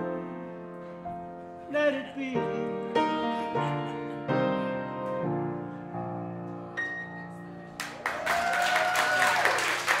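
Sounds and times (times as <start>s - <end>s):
solo piano: 0.0s - 7.8s
audience applauding: 7.8s - 10.0s.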